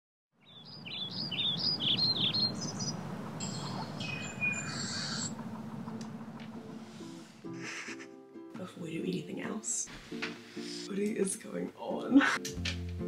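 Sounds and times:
steady low hum: 2.5 - 7.0.

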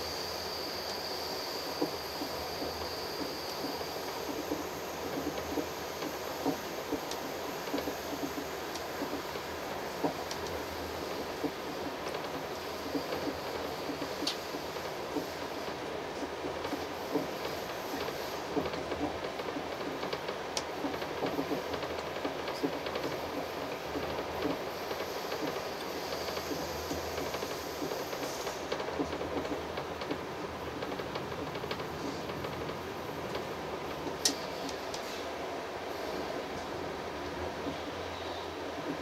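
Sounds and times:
train wheels rumbling on rails: 0.0 - 39.0.

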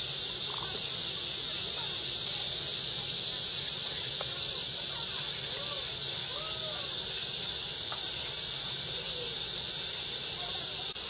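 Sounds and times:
faint distant calls: 0.0 - 11.0
insects shrilling: 0.0 - 11.0.

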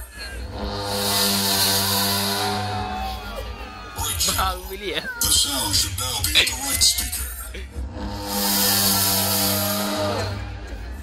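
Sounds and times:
buzzing synthesized test tone: 8.0 - 10.6.

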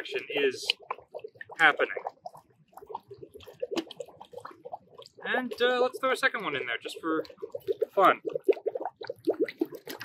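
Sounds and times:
water dripping: 0.0 - 10.0.

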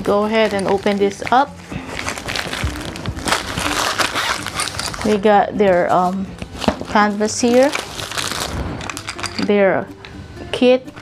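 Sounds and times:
fabric bag rustling and crinkling: 0.0 - 9.5.

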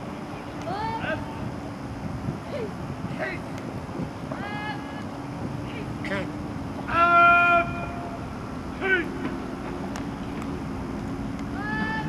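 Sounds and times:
steady low hum: 0.0 - 12.0
person shouting drill command: 6.9 - 8.1, 8.8 - 9.2, 11.6 - 12.0.

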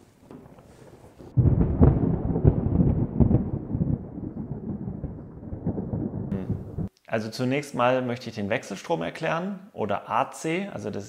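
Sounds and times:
thunder rumble with crackling: 0.1 - 6.9.

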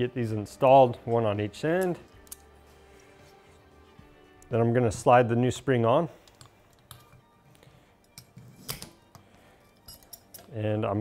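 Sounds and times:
metal parts clicking and clinking: 1.7 - 2.5, 9.7 - 10.6.

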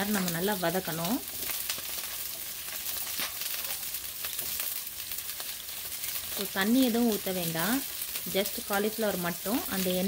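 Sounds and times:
vegetables sizzling in hot oil: 0.0 - 10.0.

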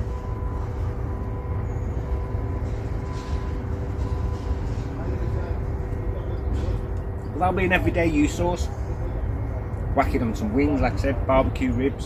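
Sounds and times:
constant mechanical hum: 0.0 - 12.0.

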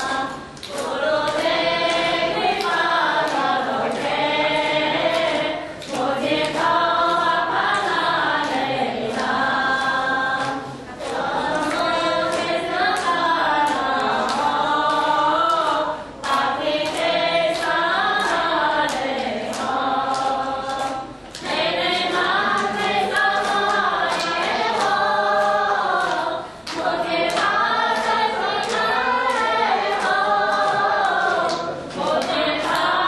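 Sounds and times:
group chanting in unison: 0.0 - 33.0.

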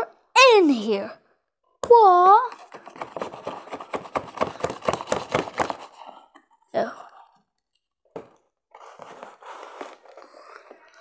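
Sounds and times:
scissors scraping cardboard: 2.5 - 6.4, 8.7 - 10.4.

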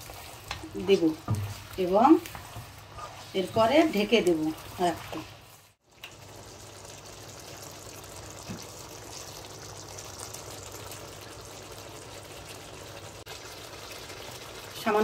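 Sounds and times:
curry sizzling in a wok: 0.0 - 15.0.

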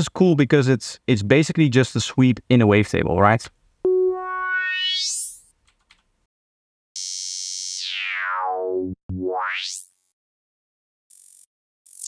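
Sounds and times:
synth filter sweep: 3.9 - 5.3.

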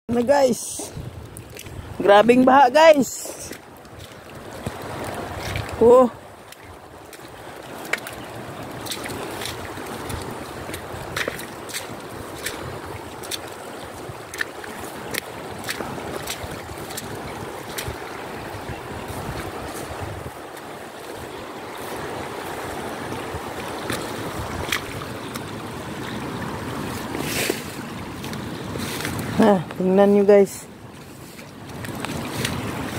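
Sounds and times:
wind: 0.0 - 32.9
floodwater rushing: 0.1 - 32.9.

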